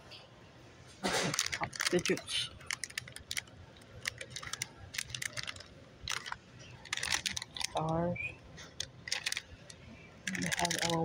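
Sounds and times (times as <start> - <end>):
plastic bag crinkling: 1.2 - 7.9, 8.6 - 11.0.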